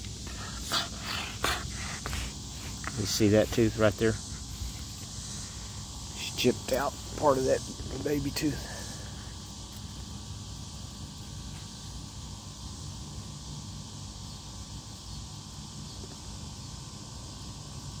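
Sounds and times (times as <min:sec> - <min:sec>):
insects droning: 0:00.0 - 0:18.0.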